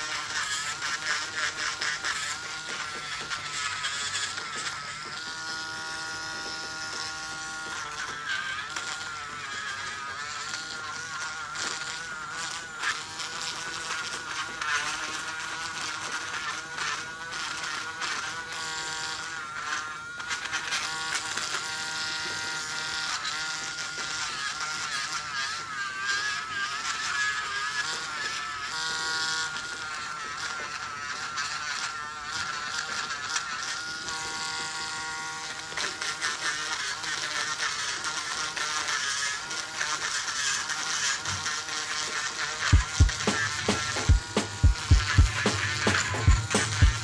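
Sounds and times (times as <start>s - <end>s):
rotary drill whining: 0.0s - 47.0s.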